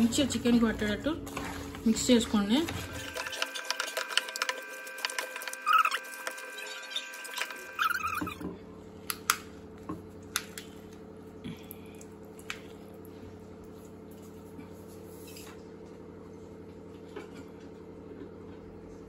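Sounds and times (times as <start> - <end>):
hand kneading wet marinade: 0.0 - 8.4
steady low hum: 6.7 - 19.0.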